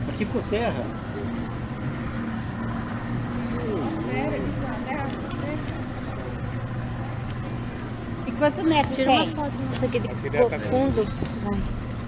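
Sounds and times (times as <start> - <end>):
boat engine droning: 0.0 - 12.0.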